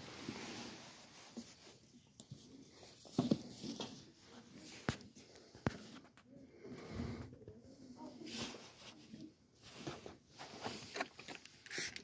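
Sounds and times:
faint rustling of book: 0.0s - 12.0s.

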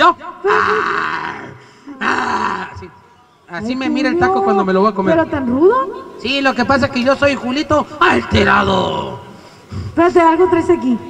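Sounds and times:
man growling into microphone: 0.5s - 3.0s.

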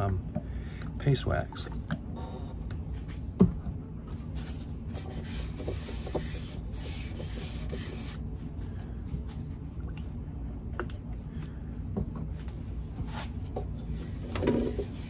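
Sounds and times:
paper towel rubbing wood: 4.4s - 8.2s, 13.1s - 15.0s.

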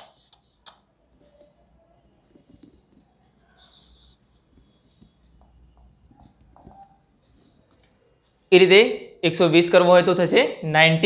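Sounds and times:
marker scratching on whiteboard: 0.0s - 0.8s, 2.3s - 7.7s
marker strokes and taps: 0.0s - 0.8s, 2.3s - 8.0s.

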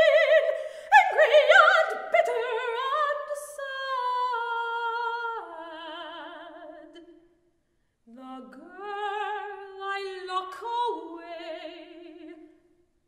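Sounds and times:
soprano singing with vibrato: 0.0s - 7.2s, 8.1s - 12.6s.

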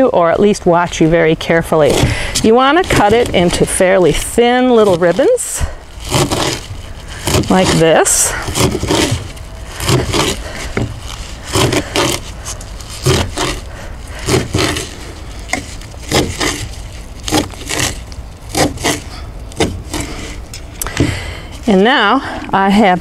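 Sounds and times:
steady low rumble: 0.0s - 23.0s.

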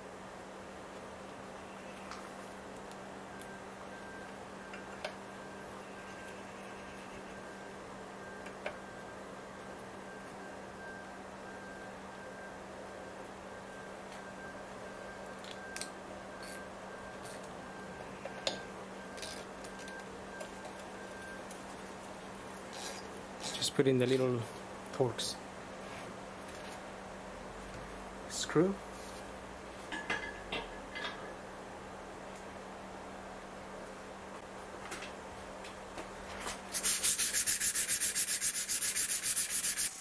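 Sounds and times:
low hum of room tone: 0.0s - 40.0s.

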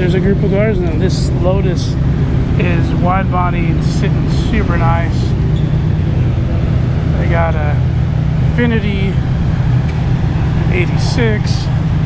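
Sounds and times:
low droning hum: 0.0s - 12.0s.

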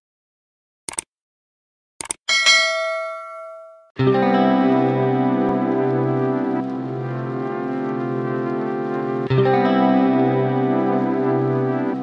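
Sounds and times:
short clicks: 0.9s - 1.1s, 2.0s - 2.2s
bell-like chime: 2.3s - 3.9s.

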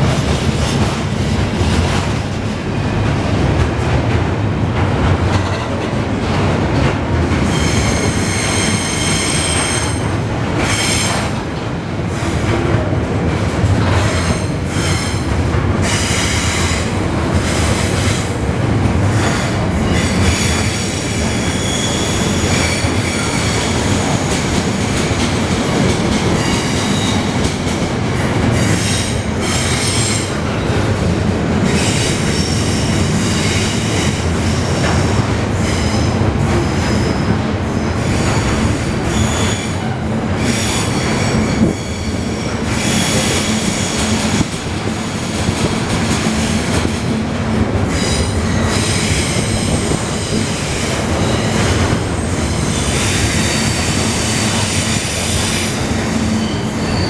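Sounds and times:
train wheels rumbling on rail: 0.0s - 57.0s
high-pitched wheel squeal: 21.4s - 23.6s.

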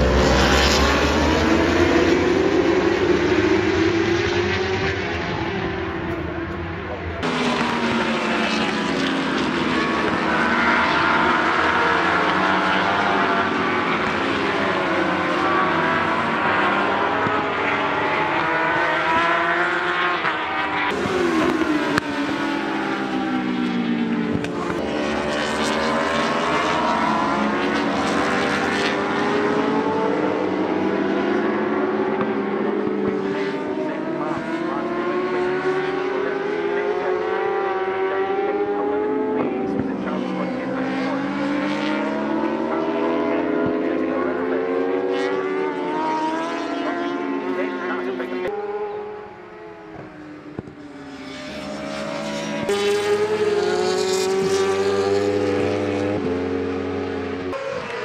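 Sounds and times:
racing motorcycles revving past: 0.0s - 58.0s.

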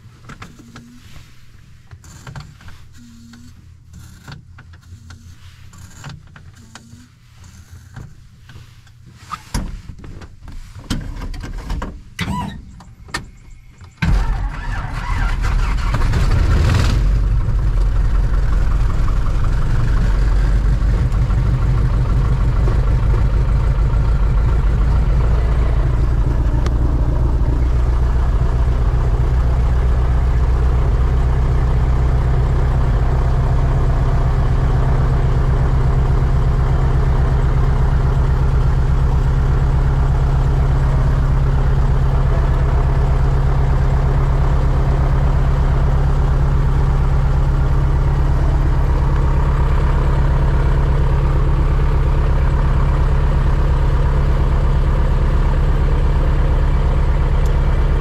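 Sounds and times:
aircraft engine and propeller idling: 14.1s - 58.0s.

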